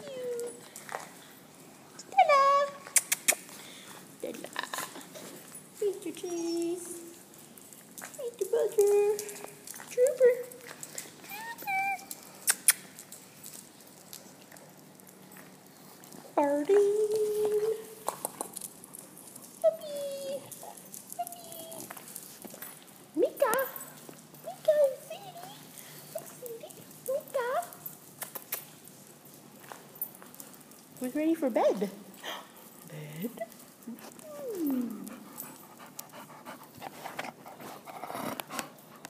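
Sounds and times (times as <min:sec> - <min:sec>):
low room hum: 0:00.0 - 0:39.0
puppy claws clicking on floor: 0:00.3 - 0:39.0.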